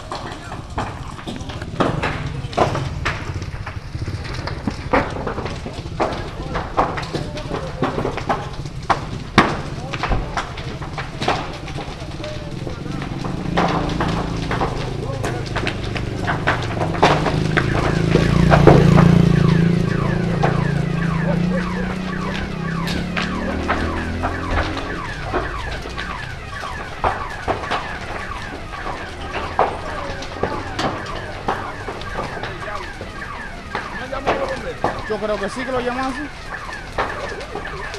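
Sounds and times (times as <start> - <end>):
fire crackling and popping: 0.0 - 37.9
low rumble: 1.1 - 6.7.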